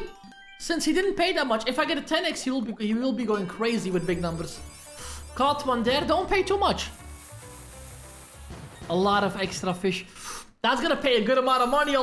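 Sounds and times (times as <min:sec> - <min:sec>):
slot game music: 0:03.2 - 0:09.7.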